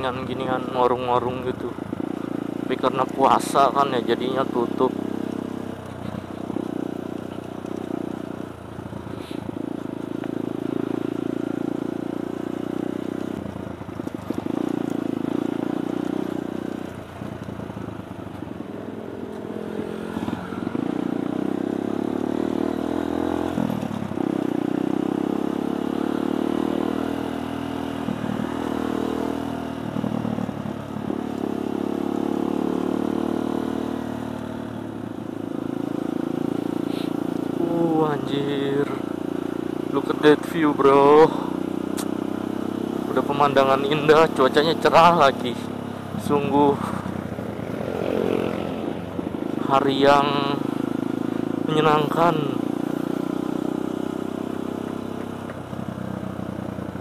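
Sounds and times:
motorcycle engine revving: 0.0s - 57.0s.

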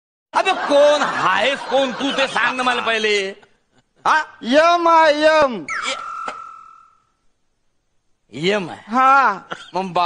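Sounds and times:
high-pitched beep: 5.7s - 6.9s.

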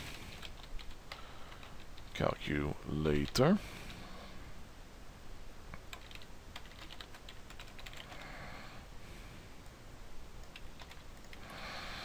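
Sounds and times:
computer keyboard typing: 0.3s - 2.1s, 5.9s - 8.3s, 10.4s - 11.5s.

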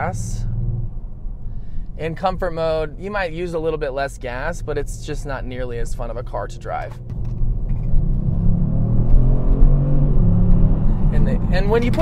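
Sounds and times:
car engine accelerating: 4.2s - 12.0s.

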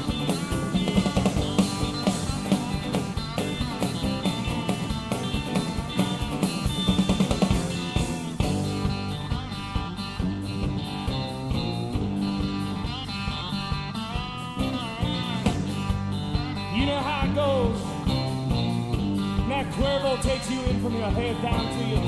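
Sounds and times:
electric guitar: 0.0s - 22.0s
steady drum beat: 0.0s - 22.0s.

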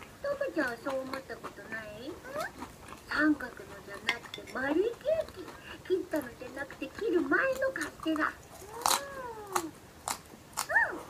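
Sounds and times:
voice making speech-like sounds: 4.8s - 9.8s, 10.6s - 11.0s.

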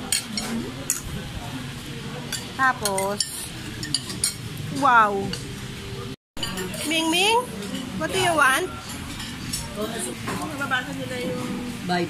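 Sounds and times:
voices talking in background: 0.0s - 12.0s.

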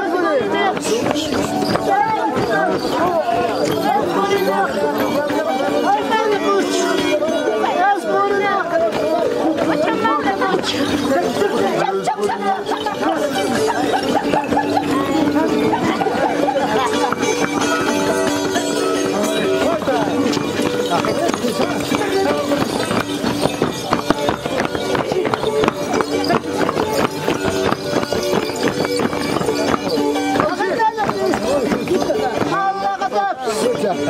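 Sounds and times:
voices singing: 0.0s - 34.0s
charango strummed: 0.2s - 34.0s.

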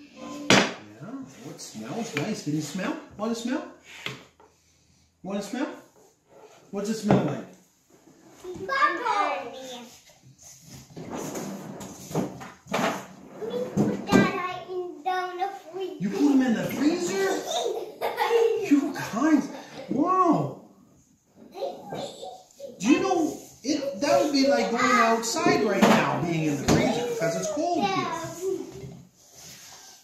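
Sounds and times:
small child's voice: 0.0s - 0.6s, 8.4s - 10.0s, 13.4s - 16.0s, 21.5s - 25.6s, 26.7s - 28.9s.

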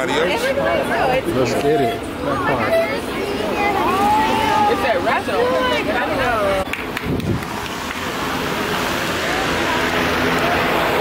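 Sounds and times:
crowd hubbub: 0.0s - 11.0s
distant voices: 0.0s - 11.0s.

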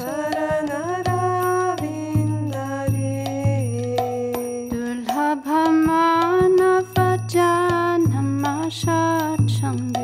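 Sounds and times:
hand cymbals jingling: 0.0s - 10.0s
woman singing devotional song: 0.0s - 10.0s.

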